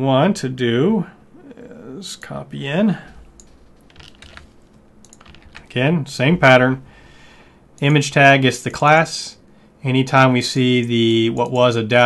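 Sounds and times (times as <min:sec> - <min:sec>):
computer keyboard keystrokes: 0:03.4 - 0:05.7.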